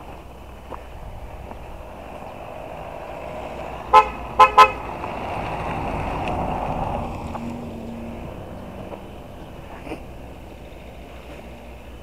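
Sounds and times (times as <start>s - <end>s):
steady background noise: 0.0s - 12.0s
vehicle horn toots: 3.9s - 4.9s.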